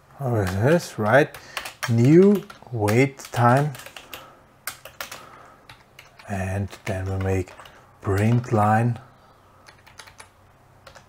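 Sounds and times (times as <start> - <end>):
faint keyboard typing: 0.2 - 11.0.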